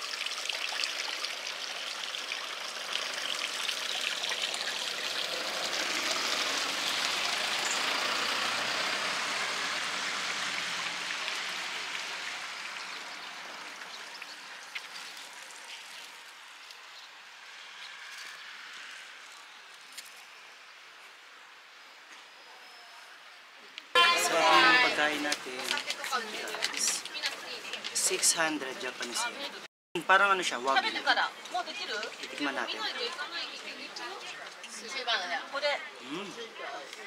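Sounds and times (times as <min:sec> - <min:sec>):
water trickling at water wheel: 0:00.0 - 0:19.3.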